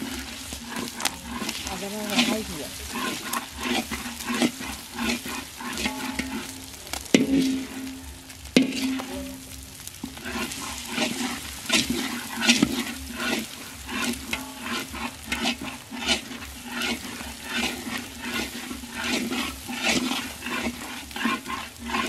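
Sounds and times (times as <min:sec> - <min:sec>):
food sizzling in a pan: 0:00.0 - 0:22.0
spatula scraping a pan: 0:00.0 - 0:22.0.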